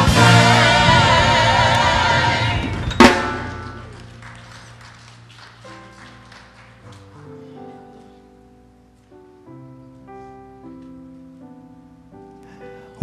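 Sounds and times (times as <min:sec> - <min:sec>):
drum kit hit: 0:00.0 - 0:04.0
gospel choir chord: 0:00.0 - 0:04.1.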